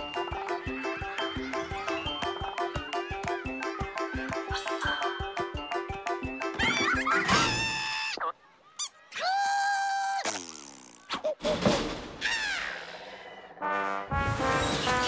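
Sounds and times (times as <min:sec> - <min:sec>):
cartoon music: 0:00.0 - 0:08.2.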